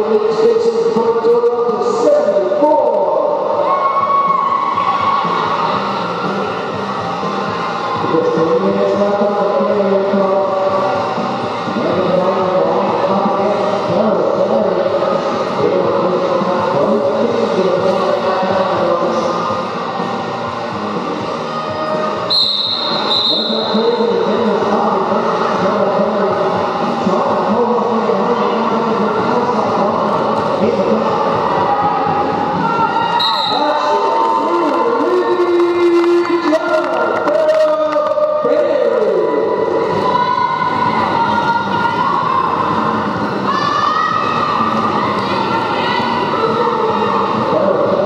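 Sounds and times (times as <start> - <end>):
crowd shouting and chanting: 0.0 - 48.0
referee's whistle: 22.3 - 23.9, 33.1 - 33.8.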